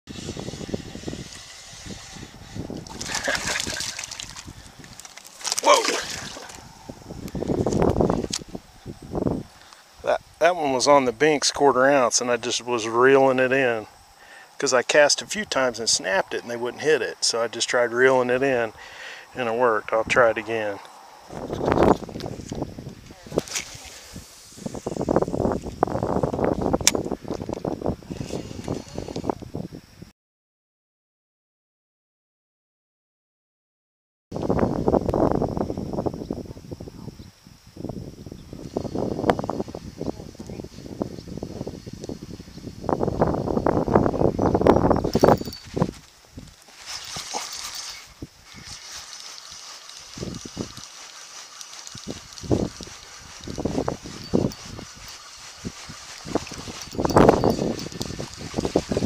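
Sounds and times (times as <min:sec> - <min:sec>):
fish splashing at water surface: 0:02.8 - 0:06.6
handling noise on microphone: 0:21.3 - 0:27.7, 0:44.6 - 0:59.0
sharp click: 0:26.8 - 0:27.0.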